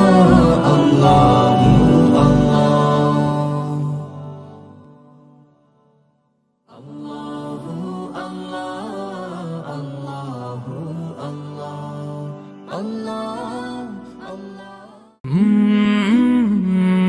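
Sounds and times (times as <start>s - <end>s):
male group chanting: 0.0s - 4.2s
chanted vocal piece: 0.0s - 5.4s, 6.7s - 17.0s.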